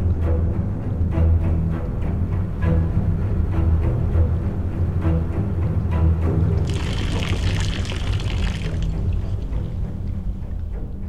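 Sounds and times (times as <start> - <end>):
low music score: 0.0 - 11.0
champagne pouring: 6.6 - 9.8.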